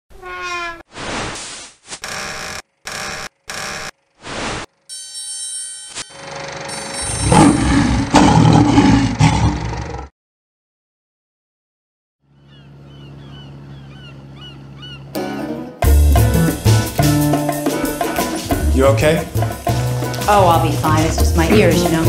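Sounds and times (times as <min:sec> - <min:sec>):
ringing steady tones: 0:04.9 - 0:07.9.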